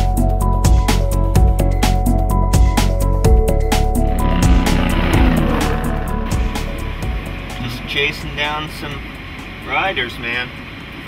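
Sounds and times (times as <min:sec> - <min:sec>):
vehicle passing on highway: 0:03.8 - 0:08.1.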